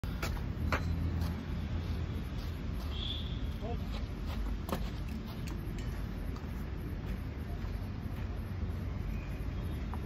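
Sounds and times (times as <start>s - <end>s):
steady low rumble: 0.0s - 10.0s.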